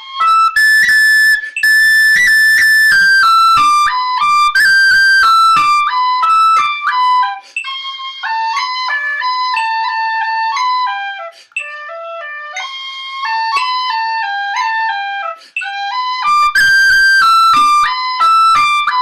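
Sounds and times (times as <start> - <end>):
tin whistle playing a tune: 0.0 - 19.0.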